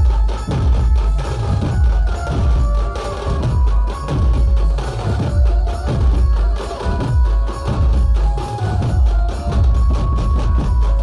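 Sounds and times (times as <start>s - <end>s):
band playing with drums: 0.0s - 11.0s
hand drums: 0.0s - 11.0s
heavy bass drums: 0.0s - 11.0s.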